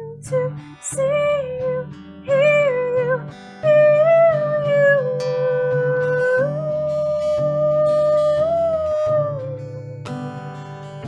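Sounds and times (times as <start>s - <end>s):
woman singing a long note: 0.0s - 10.1s
acoustic guitar: 0.0s - 11.0s.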